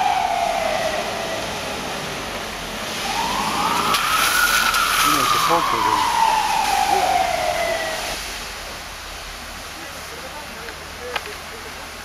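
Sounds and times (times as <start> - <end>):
siren falling in pitch: 0.0 - 2.0, 3.0 - 8.2.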